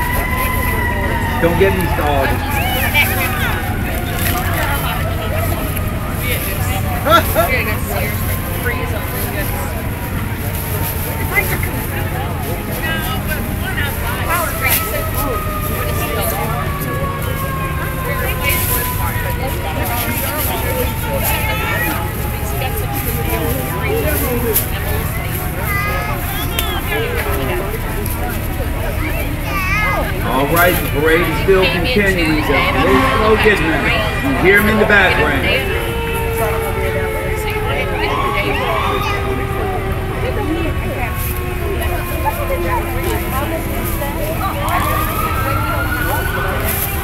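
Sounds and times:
crowd chatter: 0:00.0 - 0:47.0
low engine rumble: 0:00.0 - 0:47.0.

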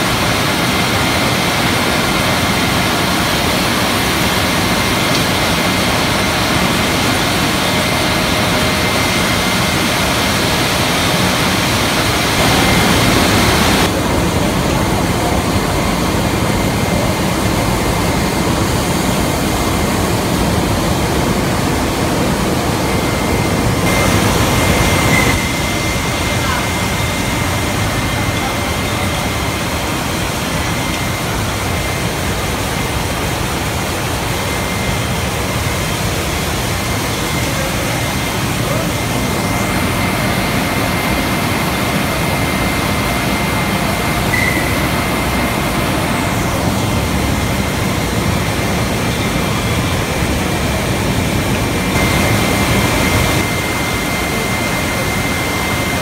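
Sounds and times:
filling machine running: 0:00.0 - 0:56.0
thin high whine: 0:00.0 - 0:56.0.

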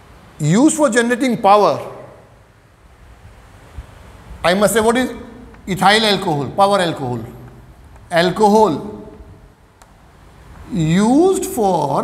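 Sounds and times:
room noise low rumble: 0:00.0 - 0:12.0.

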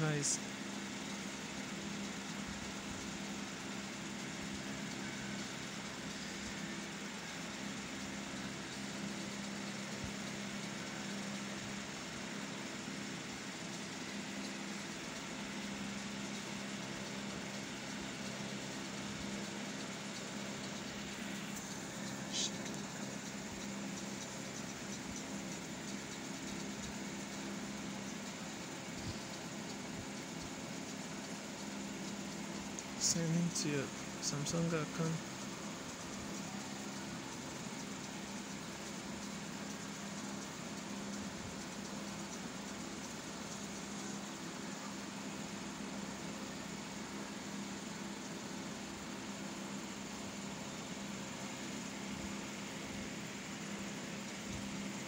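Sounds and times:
machine hum with faint hiss: 0:00.0 - 0:55.0.

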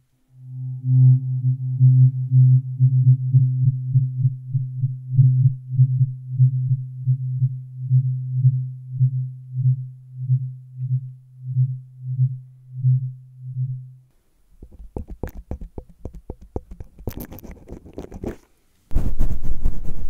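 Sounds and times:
tuning fork ringing: 0:00.3 - 0:03.2.

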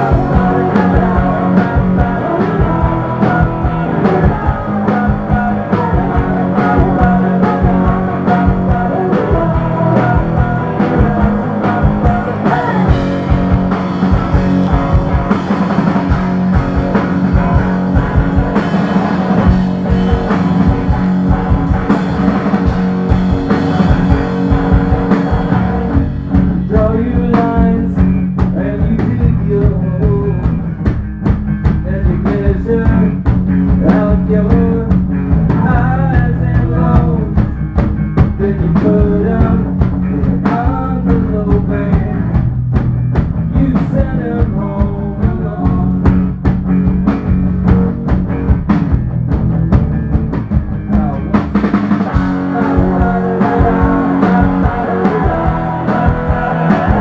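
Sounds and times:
person singing: 0:00.0 - 0:15.5, 0:26.5 - 0:30.6, 0:31.8 - 0:37.6, 0:38.4 - 0:42.3, 0:43.5 - 0:46.0, 0:50.9 - 0:57.0
rock band playing loud: 0:00.0 - 0:57.0.

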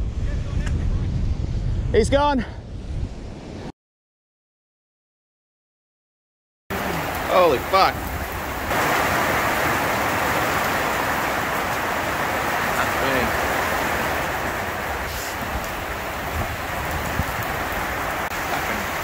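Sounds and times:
heavy rain on a metal roof: 0:06.7 - 0:19.0.

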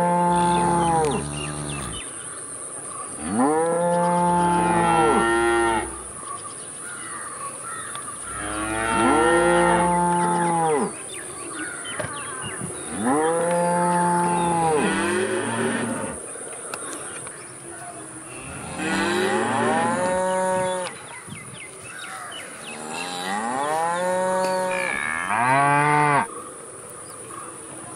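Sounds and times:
cows mooing: 0:00.0 - 0:02.0, 0:03.2 - 0:06.1, 0:08.2 - 0:11.0, 0:12.9 - 0:16.2, 0:18.4 - 0:20.9, 0:22.7 - 0:26.3.

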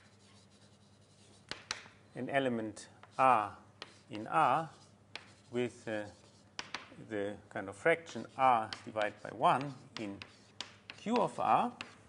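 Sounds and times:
chalk scratching on board: 0:00.0 - 0:01.8, 0:03.1 - 0:06.9, 0:08.1 - 0:12.0.

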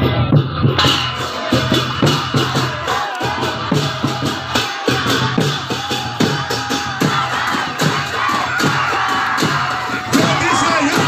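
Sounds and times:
crowd shouting: 0:00.0 - 0:11.0
drums and cymbals beating: 0:00.0 - 0:11.0.

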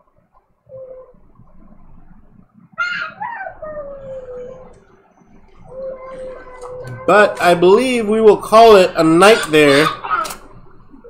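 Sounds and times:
dog whining and howling: 0:02.8 - 0:05.0, 0:05.6 - 0:07.1.

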